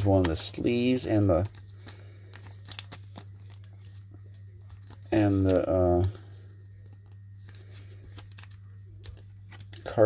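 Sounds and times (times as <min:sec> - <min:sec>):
plastic card sleeve rustling: 0:00.0 - 0:09.9.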